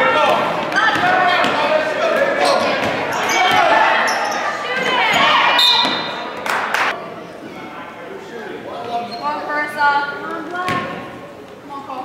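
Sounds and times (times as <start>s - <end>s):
voices of players and spectators: 0.0s - 12.0s
referee's whistle: 5.6s - 6.2s.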